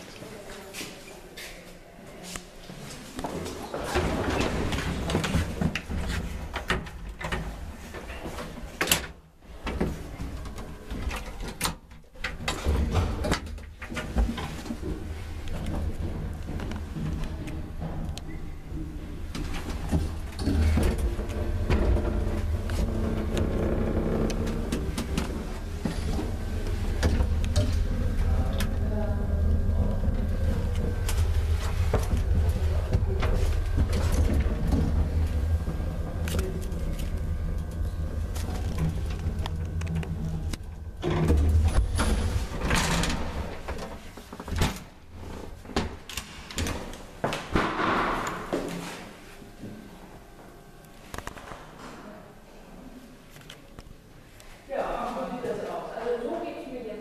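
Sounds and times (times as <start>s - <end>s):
steady low hum: 2.4s - 57.0s
elevator low rumble: 12.4s - 46.1s.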